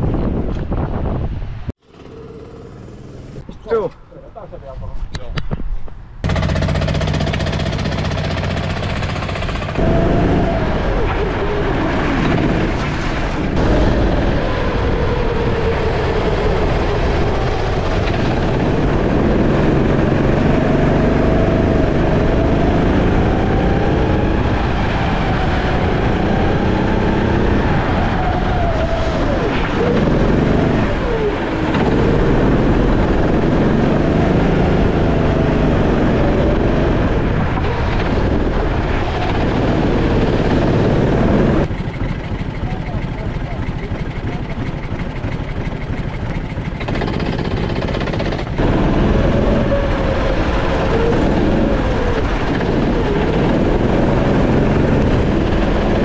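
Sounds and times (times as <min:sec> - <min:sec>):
go-kart engine revving: 0:01.8 - 0:03.4, 0:06.2 - 0:56.0.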